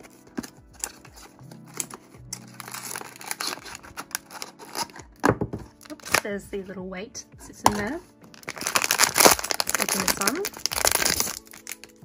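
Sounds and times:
cardboard box tearing: 0.0 - 5.0, 8.4 - 11.8
foil bag crinkling: 0.0 - 5.0, 5.8 - 6.2, 8.3 - 12.0
soft background music: 0.0 - 12.0.

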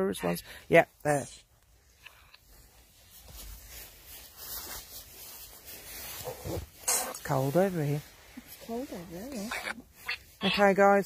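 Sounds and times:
jacket rubbing on microphone: 1.8 - 11.0.

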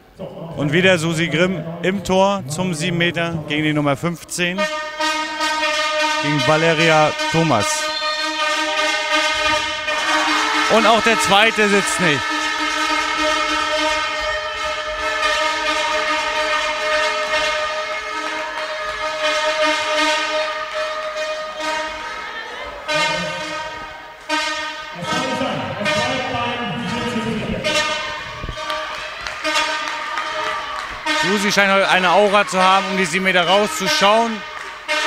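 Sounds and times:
rough low noise: 0.0 - 4.6
steady horn-like tone: 0.0 - 35.0.

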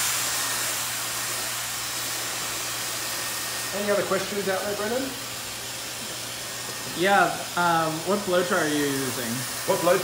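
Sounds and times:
hair dryer blowing air: 0.0 - 10.0.

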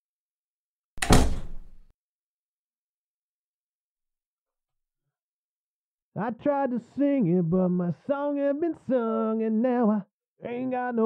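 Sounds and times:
door shutting with thud: 1.0 - 1.9.

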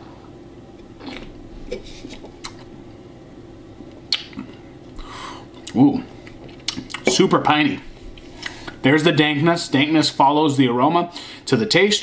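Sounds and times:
faint steady hum: 0.0 - 12.0
person sipping and swallowing: 1.0 - 2.7.

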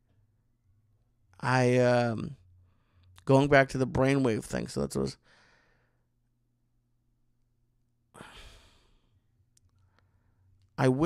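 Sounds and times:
man sighing: 8.2 - 9.0.

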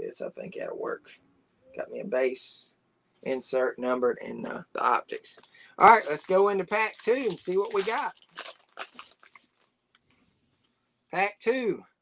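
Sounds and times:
foil wrapper tearing and crinkling: 5.9 - 9.7.

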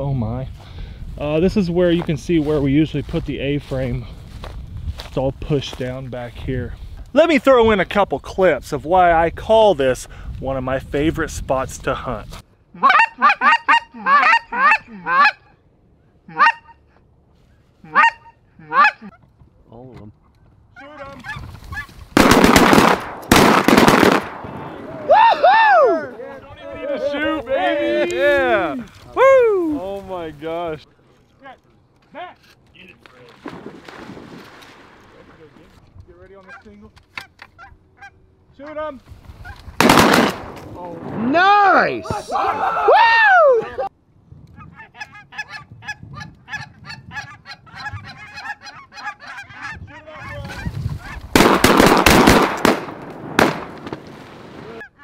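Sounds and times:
goose call honks: 12.8 - 15.6, 16.3 - 16.9, 17.8 - 19.2, 44.6 - 51.2
loud shotgun shot: 22.2 - 24.7, 39.8 - 41.2, 51.4 - 54.0.

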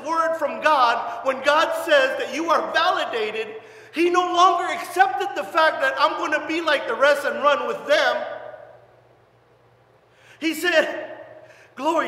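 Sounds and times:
man's voice echoing in hall: 0.0 - 9.0, 10.2 - 12.0
faint low hum: 0.0 - 12.0.

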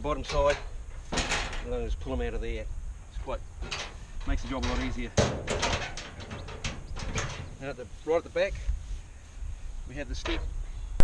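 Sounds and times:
metal rattles: 0.0 - 2.5, 3.2 - 8.0, 10.1 - 10.6
metal door shutting with knocks: 0.2 - 1.8, 3.6 - 7.7.

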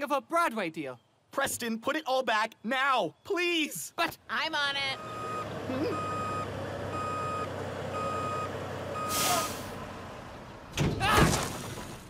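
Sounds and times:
truck engine rumble: 4.7 - 12.0
truck reversing alarm beeping: 4.9 - 9.8.

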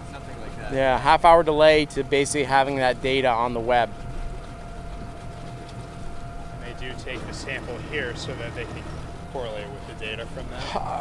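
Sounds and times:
faint thin whine: 0.0 - 11.0
low outdoor rumble: 0.0 - 11.0.

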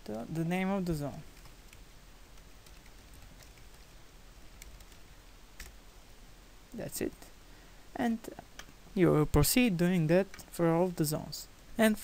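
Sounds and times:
man speaking: 0.0 - 1.3, 6.7 - 7.3, 9.0 - 12.0.

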